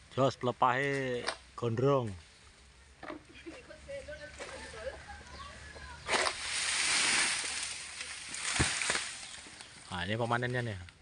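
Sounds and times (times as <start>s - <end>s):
palm frond rustling crash: 6.0s - 10.0s.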